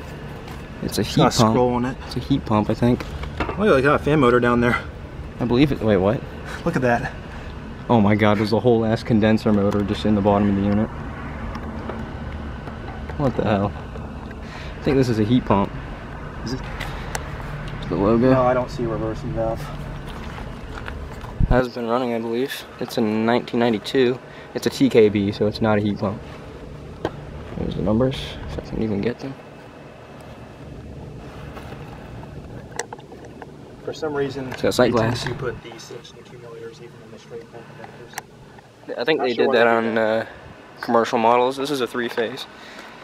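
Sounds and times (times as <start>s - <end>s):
air conditioner unit humming: 0.0s - 43.0s.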